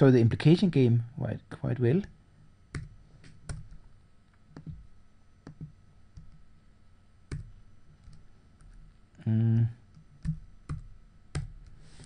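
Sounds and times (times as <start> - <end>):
keyboard and mouse clicks: 5.4 - 6.4, 7.3 - 8.8, 9.9 - 11.8
man humming: 9.2 - 9.9.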